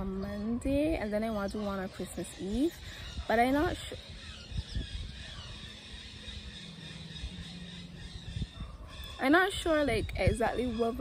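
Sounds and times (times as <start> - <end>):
steady low hum: 2.8 - 10.4.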